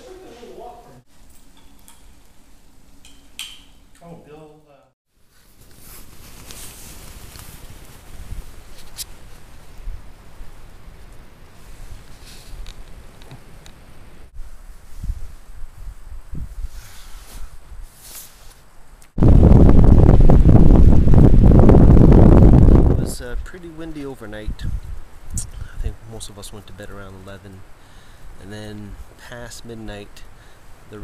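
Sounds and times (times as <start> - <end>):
leaves rustling: 5.1 - 31.0
wind on microphone: 7.1 - 11.1, 14.4 - 17.9, 19.2 - 23.5, 24.4 - 26.0.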